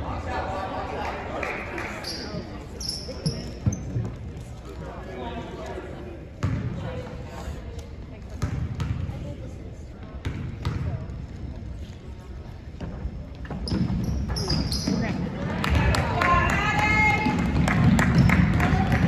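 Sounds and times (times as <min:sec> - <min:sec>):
spectator chatter: 0:00.0 - 0:13.6.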